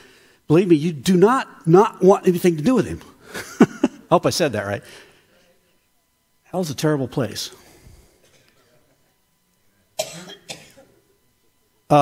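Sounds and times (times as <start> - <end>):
person coughing: 10.0 - 11.0.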